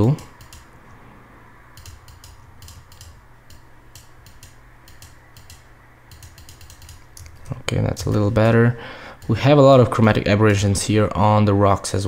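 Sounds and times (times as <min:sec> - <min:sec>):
mouse and keyboard clicks: 0:00.1 - 0:00.7, 0:01.8 - 0:08.2.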